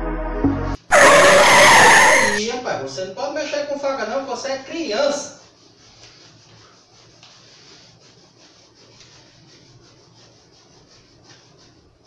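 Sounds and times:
knife sawing through foam: 0:00.9 - 0:02.4, 0:05.0 - 0:12.0.

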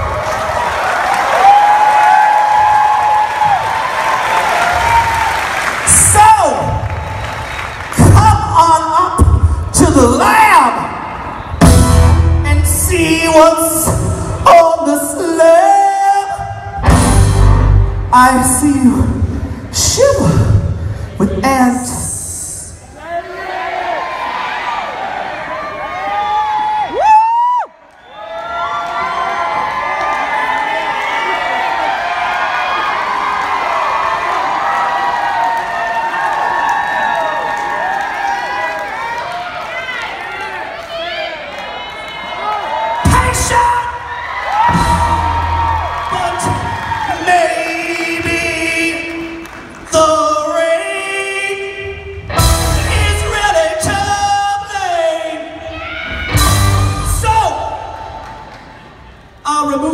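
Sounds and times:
audience cheering and whooping: 0:00.0 - 0:08.0, 0:23.0 - 0:48.2, 0:54.9 - 0:59.0
rock band hits: 0:11.6 - 0:12.5, 0:16.8 - 0:18.0, 0:44.6 - 0:46.0, 0:52.3 - 0:53.4, 0:56.2 - 0:57.2
person singing: 0:46.1 - 0:55.5.

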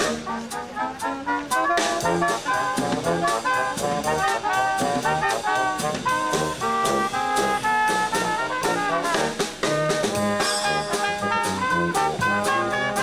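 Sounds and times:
drum beat: 0:00.0 - 0:13.0
upbeat brass music: 0:00.0 - 0:13.0.

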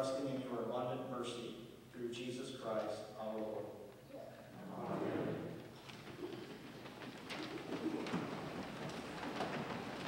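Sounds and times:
paper rustling: 0:05.7 - 0:10.0.

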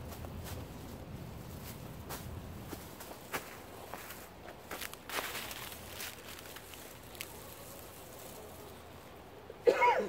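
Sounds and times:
dry leaves and twigs crunching: 0:00.0 - 0:09.4.

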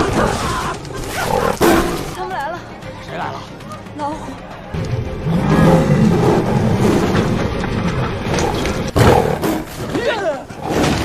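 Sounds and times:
tigers growling and roaring: 0:00.0 - 0:02.2, 0:04.7 - 0:11.0.

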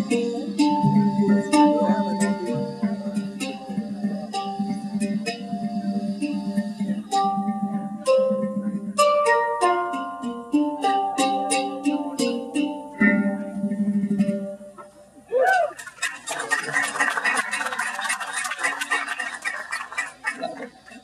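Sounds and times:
hang drum notes: 0:00.0 - 0:14.8
swooping tone: 0:00.0 - 0:15.8.

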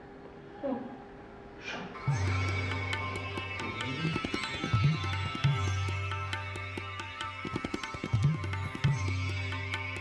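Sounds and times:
light percussion strikes: 0:02.0 - 0:10.0.

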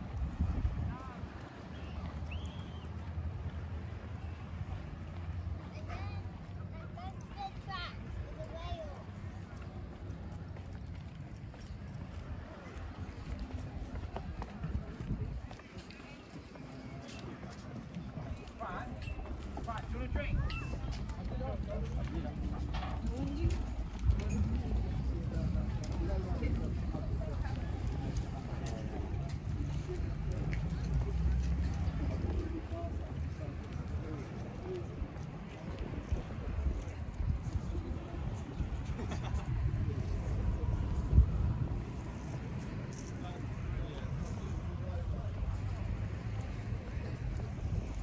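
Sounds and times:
wind buffeting microphone: 0:00.0 - 0:02.2, 0:11.9 - 0:16.4, 0:33.7 - 0:48.0.

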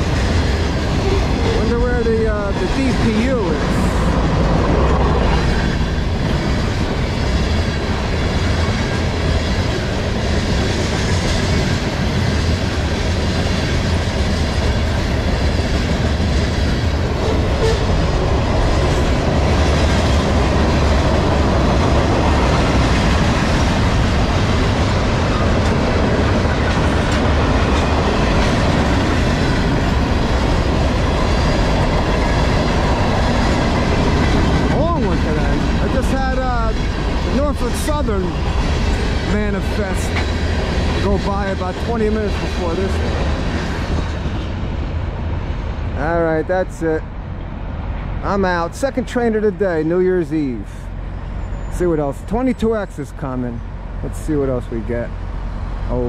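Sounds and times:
steel wheels clattering on rails: 0:00.0 - 0:44.8
freight train rumbling past: 0:00.0 - 0:56.0.

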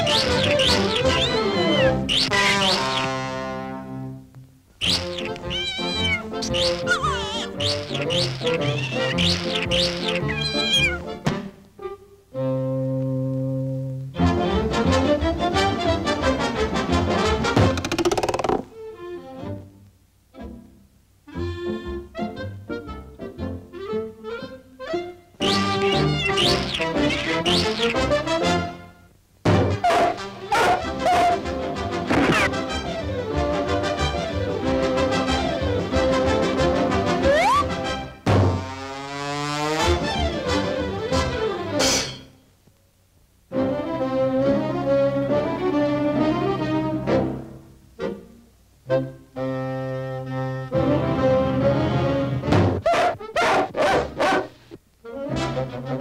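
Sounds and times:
cartoon kitten crying: 0:00.0 - 0:02.9, 0:05.0 - 0:11.1, 0:25.5 - 0:28.1, 0:37.2 - 0:37.8
orchestral cartoon music: 0:00.0 - 0:18.0, 0:20.4 - 0:38.6, 0:39.8 - 0:42.2, 0:43.5 - 0:52.7, 0:55.1 - 0:56.0.

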